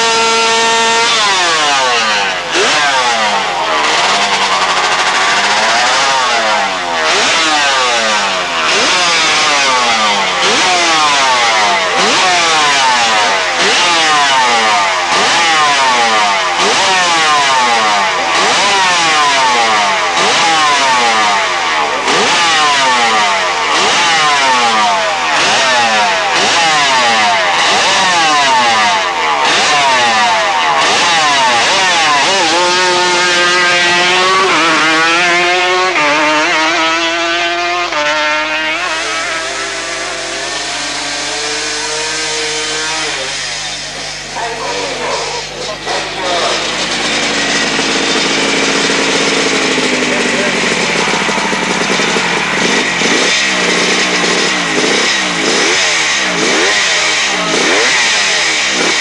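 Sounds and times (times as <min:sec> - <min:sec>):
motorcycle engine revving: 0:00.0 - 0:59.0.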